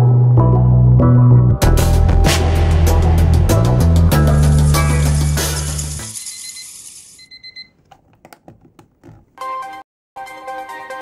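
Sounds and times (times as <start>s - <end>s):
music track: 0.0s - 6.2s
alarm clock beeping: 6.1s - 7.7s.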